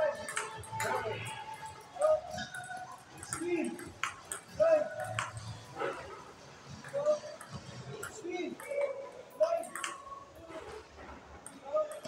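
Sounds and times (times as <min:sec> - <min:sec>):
table tennis ball clicking: 0:00.1 - 0:01.0, 0:06.8 - 0:10.0.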